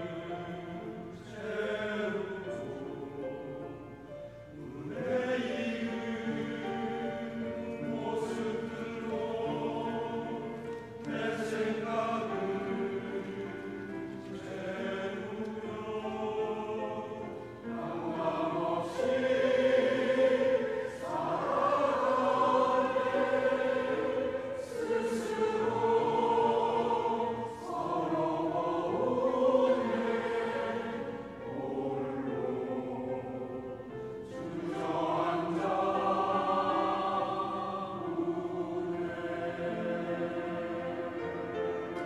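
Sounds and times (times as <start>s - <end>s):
mixed choir singing: 0.0s - 42.0s.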